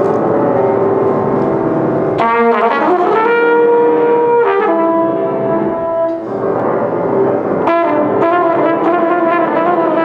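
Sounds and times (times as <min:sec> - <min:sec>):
grand piano playing: 0:00.0 - 0:10.0
trumpet long note: 0:02.1 - 0:10.0.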